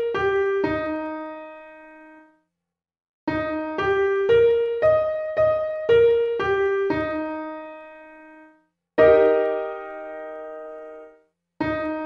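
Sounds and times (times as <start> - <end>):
piano arpeggio: 0.0 - 2.2, 3.3 - 12.0
piano chord ringing: 9.0 - 11.1.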